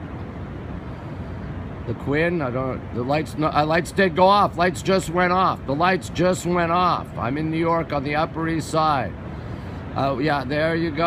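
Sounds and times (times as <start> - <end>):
city traffic hum: 0.0 - 11.0.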